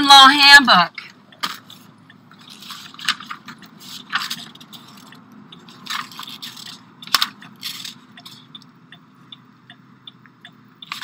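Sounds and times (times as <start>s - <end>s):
rustling and scraping handling noise: 1.0s - 8.5s.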